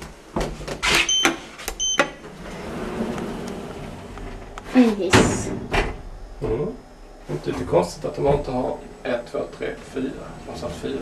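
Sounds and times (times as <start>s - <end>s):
elevator mechanical whirr: 0.0s - 11.0s
elevator button beeps: 1.0s - 2.2s.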